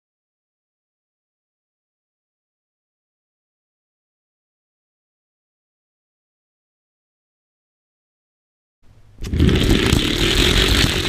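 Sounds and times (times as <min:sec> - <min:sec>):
toy cars rattling along track: 0:09.3 - 0:11.0.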